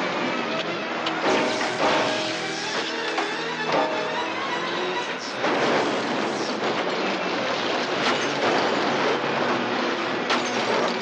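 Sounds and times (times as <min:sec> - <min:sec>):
bus engine under load: 0:00.0 - 0:11.0
sharp crash: 0:01.2 - 0:04.2
metal clattering and scraping: 0:01.2 - 0:11.0.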